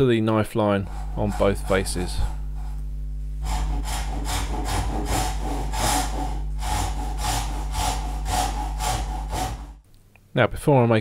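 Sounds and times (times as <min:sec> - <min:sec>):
hand saw rasping strokes: 0:00.7 - 0:02.8, 0:03.4 - 0:09.8.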